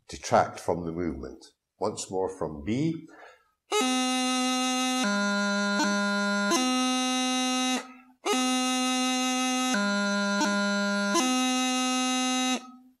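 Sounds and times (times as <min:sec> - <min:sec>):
practice chanter playing: 0:03.7 - 0:12.9.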